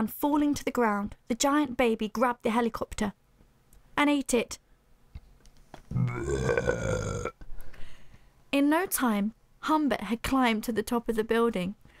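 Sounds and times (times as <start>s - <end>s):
long burp: 5.9s - 7.4s.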